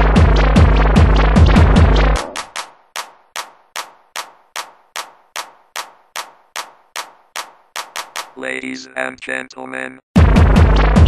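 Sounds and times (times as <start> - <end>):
drum machine snare hits: 0.0 - 8.4, 10.2 - 11.0.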